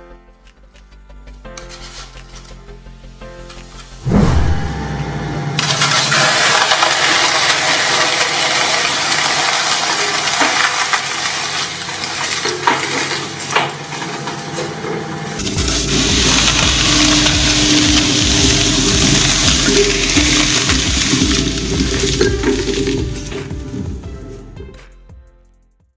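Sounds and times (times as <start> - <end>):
deep machine rumble: 4.0 - 6.2, 15.3 - 24.6
shredder crunching foam: 5.6 - 23.6.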